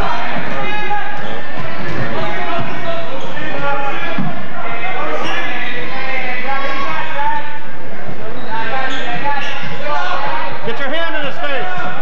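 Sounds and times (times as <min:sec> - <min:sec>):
voices in echoing hall: 0:00.0 - 0:12.0.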